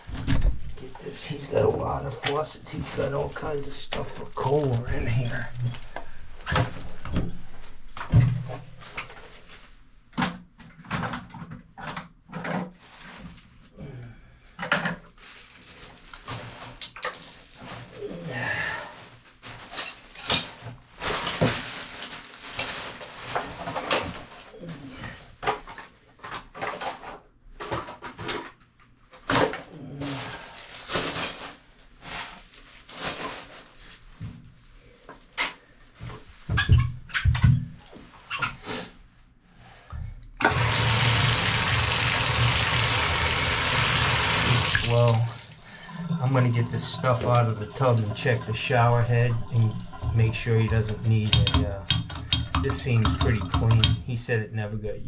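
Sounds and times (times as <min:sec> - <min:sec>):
items clattering in a bathtub: 0:00.0 - 0:13.6, 0:14.6 - 0:18.0, 0:18.7 - 0:34.5, 0:35.1 - 0:38.6, 0:44.2 - 0:54.1
water running from tub spout: 0:40.4 - 0:53.8.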